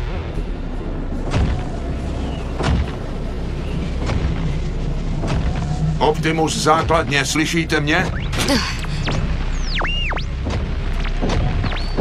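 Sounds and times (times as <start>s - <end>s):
blizzard wind: 0.0s - 12.0s.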